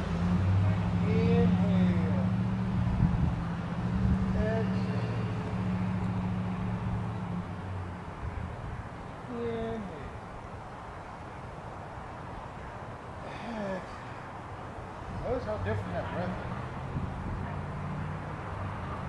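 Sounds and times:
low engine hum: 0.0s - 11.8s
distant gliding calls: 0.0s - 12.9s
outdoor background noise: 0.0s - 19.0s.

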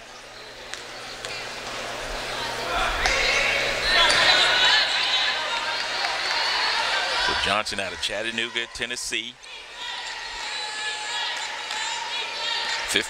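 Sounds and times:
voices: 0.0s - 13.0s.

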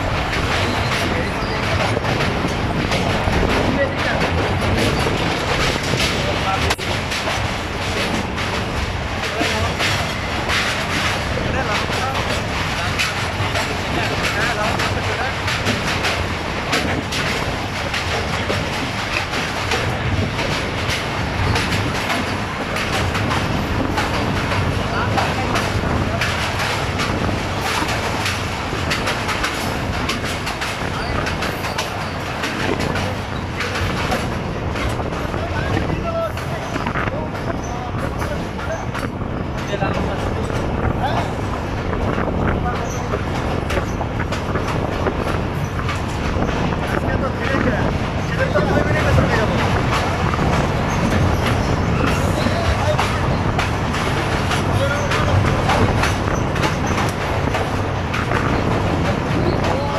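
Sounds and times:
train carriage rumble: 0.0s - 59.9s
wheels clattering over rail joints: 0.0s - 59.9s.

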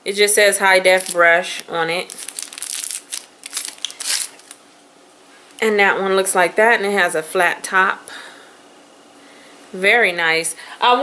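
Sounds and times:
plastic packaging crinkling: 0.9s - 4.6s.

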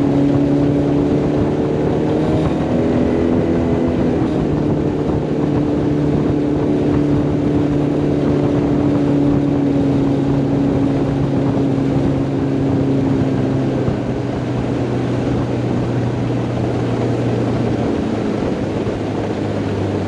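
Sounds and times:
outboard motor running: 0.0s - 20.0s
water along boat hull: 0.0s - 20.0s.

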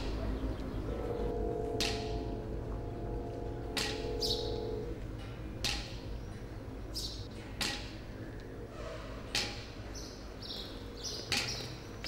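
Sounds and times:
high bird chirps: 0.0s - 4.9s
held ringing tone: 0.8s - 5.6s.

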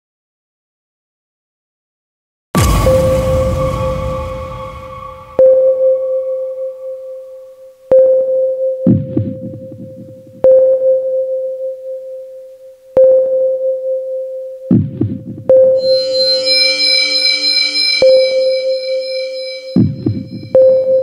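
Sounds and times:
low rumbling hit: 2.6s - 6.0s, 15.8s - 20.5s
synth tone ringing out: 2.6s - 7.1s, 15.8s - 21.0s.

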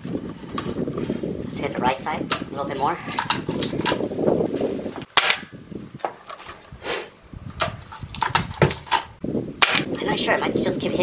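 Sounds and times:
air rifle shots: 5.1s - 5.6s, 9.6s - 9.9s.

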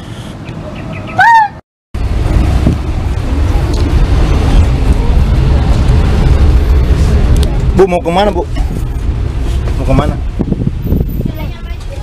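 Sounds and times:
van engine and road rumble: 0.0s - 12.0s
loud rising and falling call: 0.9s - 1.6s.

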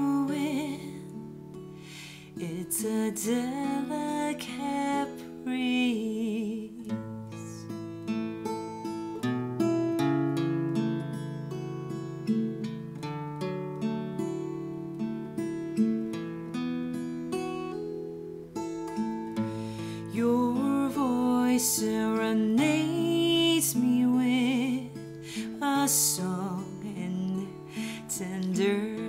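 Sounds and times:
acoustic guitar picking: 0.0s - 29.0s.

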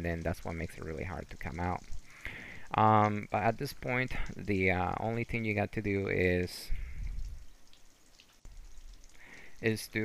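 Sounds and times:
water trickling and dripping: 0.0s - 10.0s.

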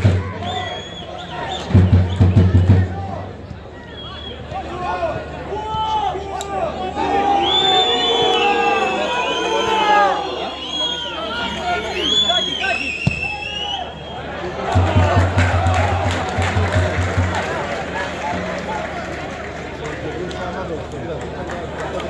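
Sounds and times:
hubbub of voices: 0.0s - 22.0s
high whistle: 0.4s - 2.6s, 3.8s - 4.5s, 7.3s - 14.3s.

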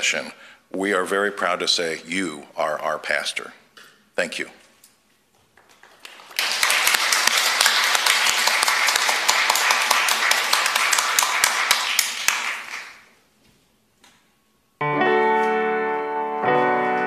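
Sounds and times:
group applause: 5.6s - 13.2s.

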